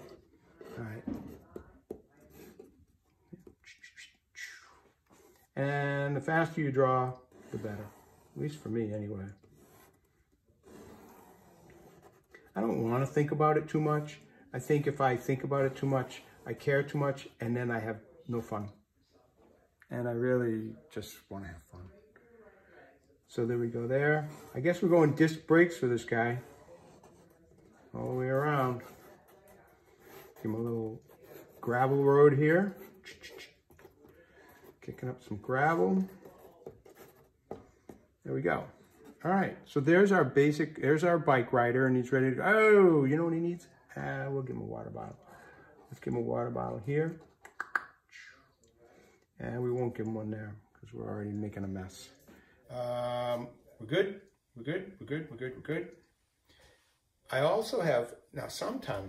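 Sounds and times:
pen scratching on paper: 0:07.2 - 0:13.2, 0:26.0 - 0:34.6.

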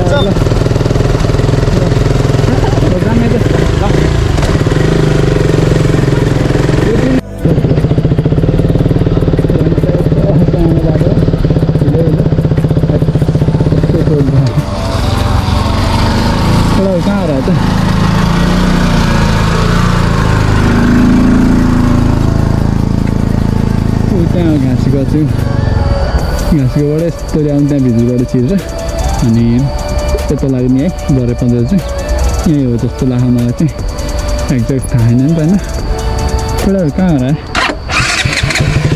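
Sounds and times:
motorcycle engine running: 0:00.0 - 0:38.9.

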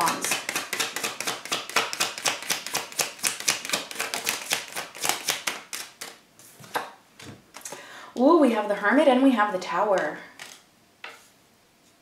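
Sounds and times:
cards being shuffled by hand: 0:00.0 - 0:07.7.

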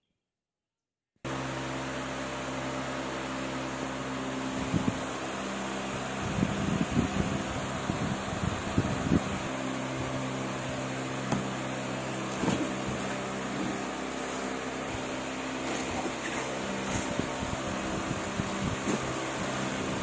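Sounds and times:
fan-like mechanical hum: 0:01.3 - 0:20.0
packaging rustling and thudding: 0:12.2 - 0:13.8.

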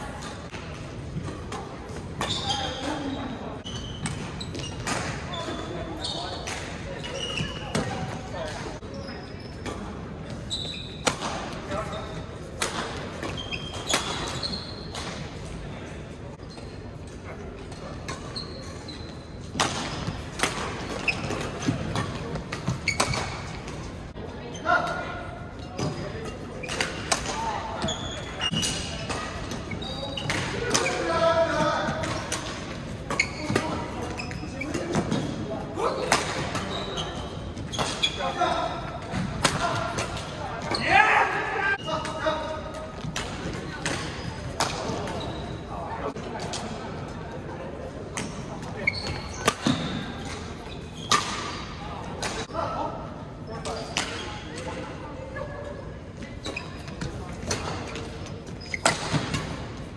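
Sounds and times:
shoes squeaking on court floor: 0:00.0 - 0:52.6, 0:53.4 - 0:59.9
players' voices: 0:00.0 - 0:59.9.

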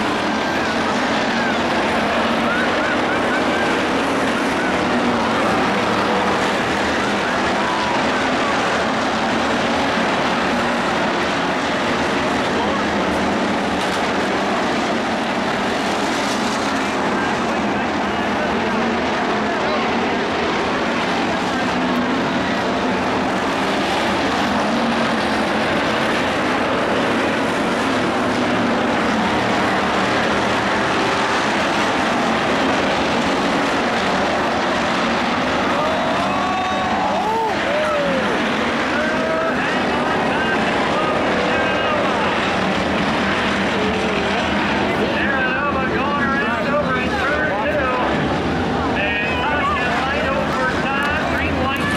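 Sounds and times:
race car engines at high revs: 0:00.0 - 0:51.9.

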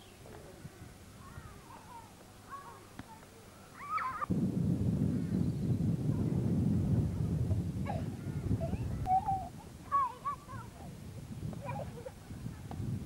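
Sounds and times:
wind buffeting microphone: 0:00.4 - 0:02.0, 0:04.2 - 0:13.0
children shouting and squealing: 0:01.2 - 0:04.3, 0:07.9 - 0:10.9, 0:11.6 - 0:12.7.

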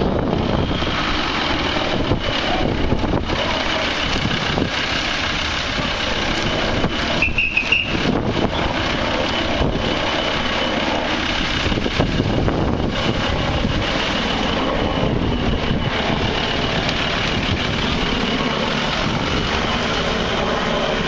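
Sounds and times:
cars moving slowly: 0:00.0 - 0:21.0
dense noisy rush: 0:00.0 - 0:21.0.

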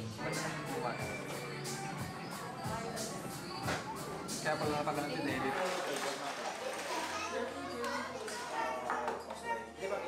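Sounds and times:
people chattering: 0:00.0 - 0:10.0
children's voices: 0:06.6 - 0:09.7.

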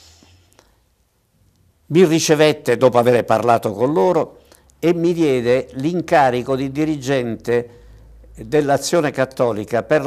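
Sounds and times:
faint breathy hiss: 0:00.0 - 0:01.8
man speaking: 0:01.9 - 0:07.7, 0:08.3 - 0:10.0.

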